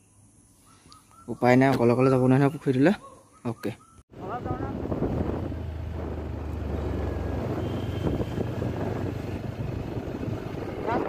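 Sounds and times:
wind and road noise: 4.1s - 11.0s
motorcycle engine running: 4.2s - 11.0s.

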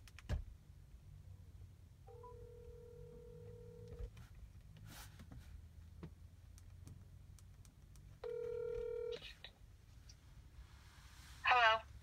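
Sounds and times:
phone ringing tone beep: 2.1s - 4.1s, 8.2s - 9.2s.

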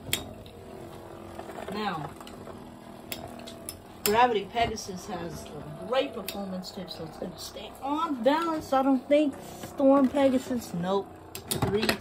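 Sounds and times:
spinning tops whirring: 0.0s - 11.8s.

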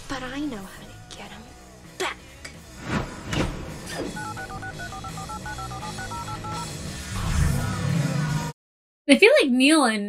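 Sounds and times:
phone keypad beeps: 4.2s - 6.7s.

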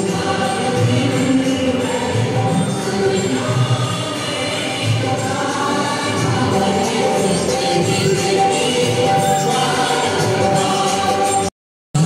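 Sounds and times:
group singing held notes: 0.0s - 11.5s.

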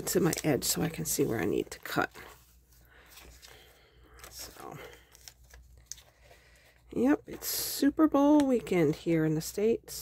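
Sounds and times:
magazine paper rustling and creasing: 0.0s - 9.2s.

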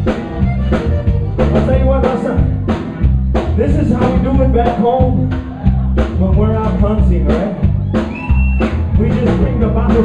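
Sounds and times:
button accordion: 0.0s - 2.7s
drum kit: 0.0s - 10.0s
electric bass: 0.0s - 10.0s.

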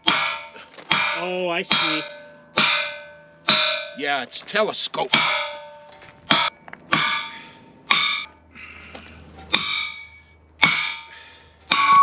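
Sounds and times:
hammer clanging on steel tubing: 0.0s - 4.4s, 5.1s - 8.4s, 9.3s - 12.0s.

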